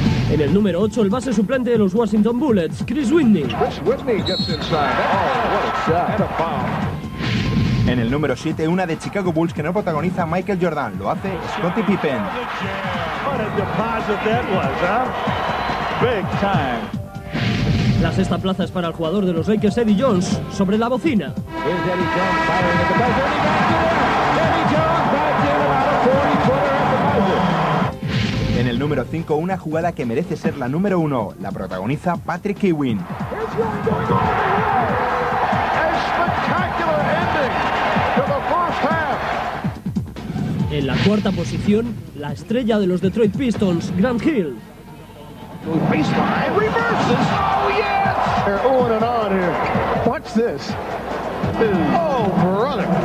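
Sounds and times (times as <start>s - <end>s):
arena crowd noise: 3.2s - 17.0s, 21.5s - 28.0s, 33.0s - 39.8s, 43.7s - 53.0s
man commentating: 21.5s - 27.8s.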